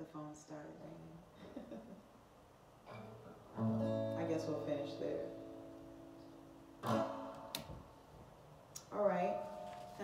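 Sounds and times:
acoustic guitar strums: 2.8s - 8.2s, 9.0s - 10.0s.

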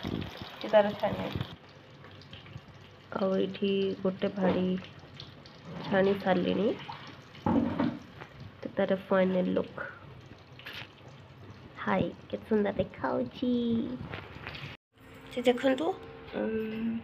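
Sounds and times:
woman speaking: 0.6s - 1.4s, 15.4s - 17.0s.

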